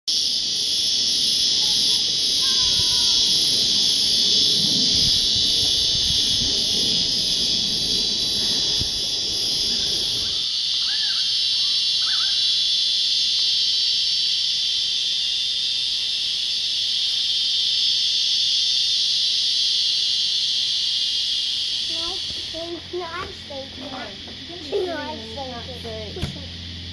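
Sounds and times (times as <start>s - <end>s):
cicadas droning: 0.1s - 26.9s
insect pulsing: 0.1s - 26.9s
low rumble on microphone: 2.1s - 10.4s
bird chirps: 9.7s - 12.4s.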